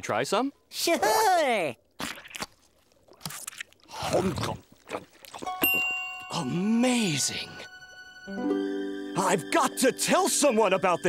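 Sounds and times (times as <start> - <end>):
wet squish: 1.7 - 5.6
biting and chewing: 1.9 - 5.9.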